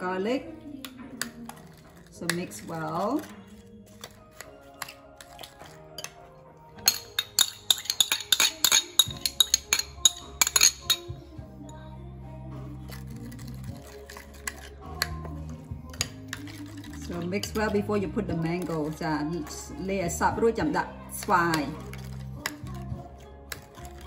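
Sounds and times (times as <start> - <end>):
background music: 0.0 - 24.0
spoon clinking against ceramic bowl: 0.9 - 11.8, 12.9 - 17.9.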